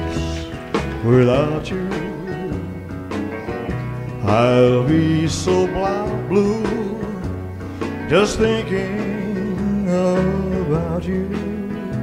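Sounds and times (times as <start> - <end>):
country music with sliding guitar: 0.0 - 12.0.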